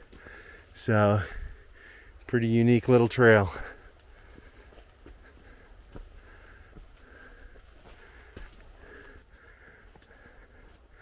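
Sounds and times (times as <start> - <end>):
footsteps on dirt trail: 0.0 - 1.4, 3.4 - 11.0.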